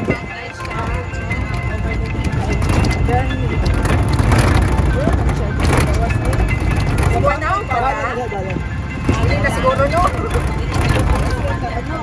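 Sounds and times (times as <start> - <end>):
vehicle rumble from inside: 0.0 - 12.0
voices: 0.0 - 12.0.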